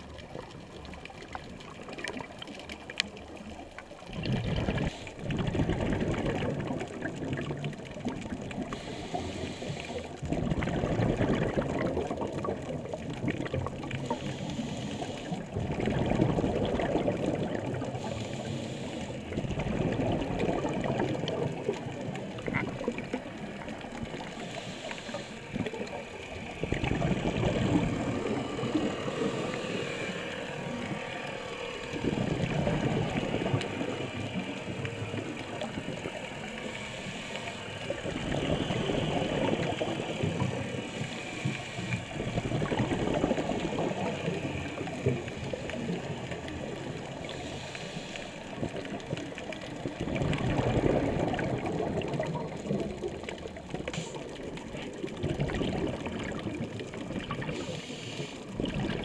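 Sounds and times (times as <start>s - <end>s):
bubbly underwater exhalation: 0.0s - 9.2s, 10.0s - 14.2s, 15.2s - 18.1s, 19.2s - 24.4s, 25.4s - 31.1s, 31.8s - 36.6s, 37.8s - 40.9s, 42.2s - 47.1s, 48.6s - 57.8s, 58.5s - 59.0s
faint reef crackle: 0.0s - 59.0s.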